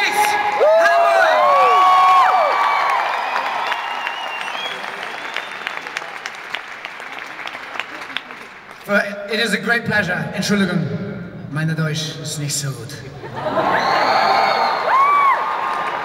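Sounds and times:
fans shouting: 0.0s - 4.1s
arena audience applauding: 0.0s - 8.9s, 13.5s - 16.0s.

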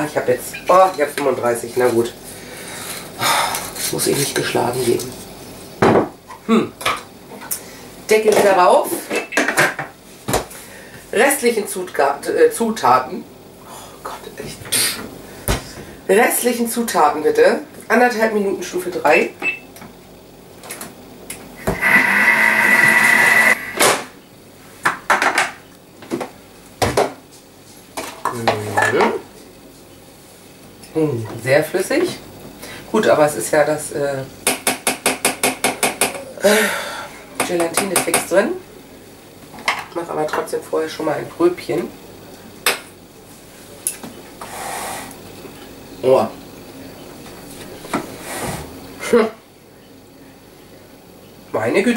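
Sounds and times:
kitchen mixer whining: 21.6s - 23.8s.

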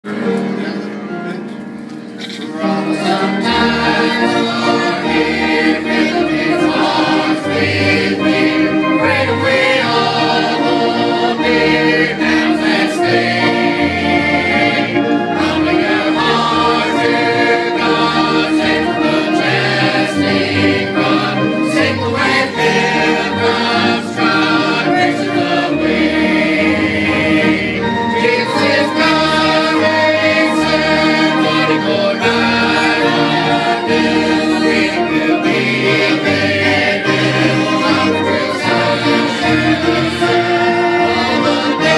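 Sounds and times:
choir singing a gospel hymn: 2.2s - 41.9s.

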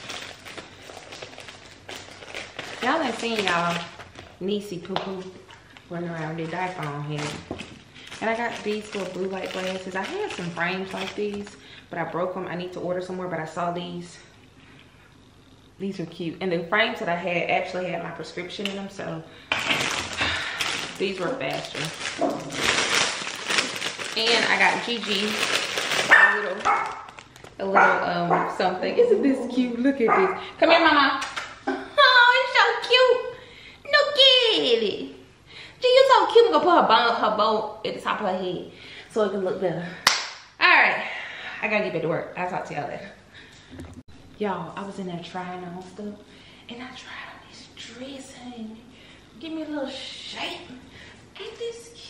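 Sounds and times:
plastic bag rustling and crinkling: 0.0s - 11.6s, 18.6s - 27.7s.

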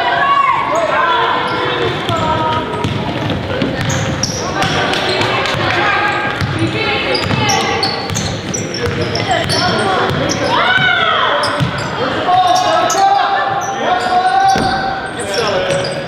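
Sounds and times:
players and spectators shouting: 0.0s - 2.7s, 3.7s - 16.0s
sneakers squeaking: 0.5s - 16.0s
basketball dribbling on court: 2.1s - 10.9s.

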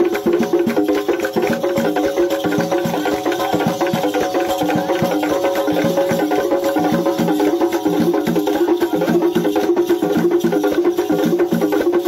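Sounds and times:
lively dance music: 0.0s - 11.8s.

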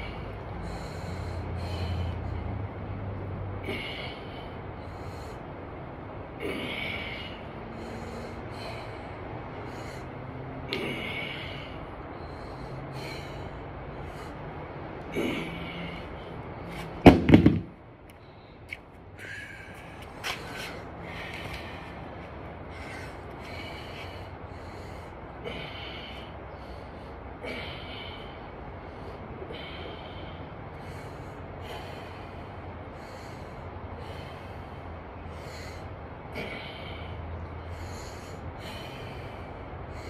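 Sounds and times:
man breathing hard: 0.0s - 17.1s, 17.9s - 40.0s.

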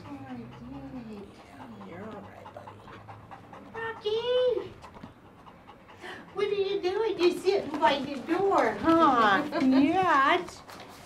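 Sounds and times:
woman talking: 0.0s - 2.9s, 3.6s - 4.8s, 6.0s - 10.7s
dog panting: 0.0s - 11.0s.

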